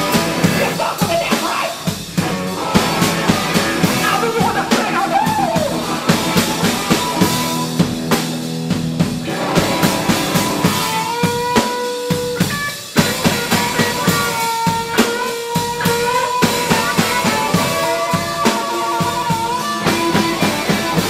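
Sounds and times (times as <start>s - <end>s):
drum kit with cymbals: 0.0s - 21.0s
electric guitar chords: 0.0s - 21.0s.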